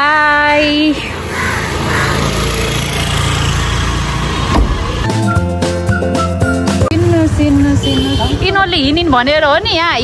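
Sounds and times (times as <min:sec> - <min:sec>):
car door slamming: 0:04.4 - 0:05.1.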